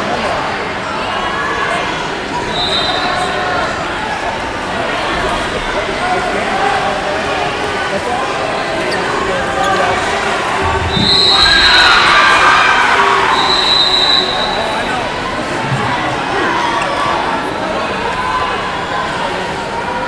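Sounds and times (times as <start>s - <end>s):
babble of many voices: 0.0s - 20.0s
referee's whistle blast: 2.5s - 3.3s, 10.7s - 12.3s, 13.2s - 14.9s.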